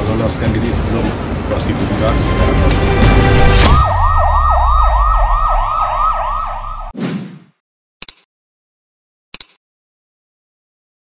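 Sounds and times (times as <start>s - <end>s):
falling swoosh: 3.3s - 7.5s
yelping siren sound effect: 3.6s - 7.0s.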